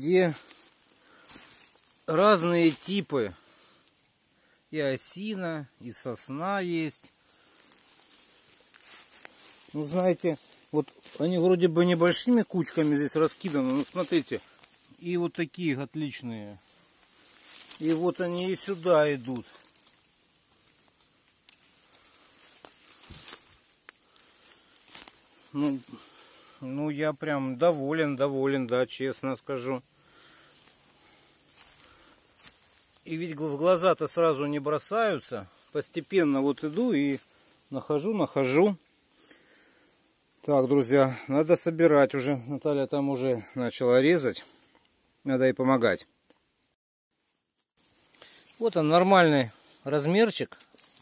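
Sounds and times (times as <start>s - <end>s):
footsteps on dry leaves: 0.2s - 3.6s, 7.4s - 15.0s, 16.2s - 26.6s, 30.1s - 33.7s, 50.6s - 51.0s.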